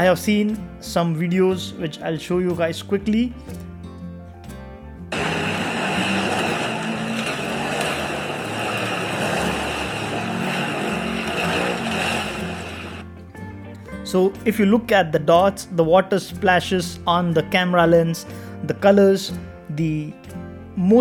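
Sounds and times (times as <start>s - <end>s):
background music with bass: 0.0s - 21.0s
buggy engine: 5.1s - 13.0s.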